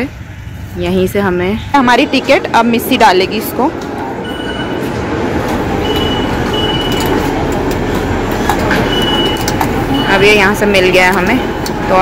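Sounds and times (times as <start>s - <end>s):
train rumble: 0.0s - 12.0s.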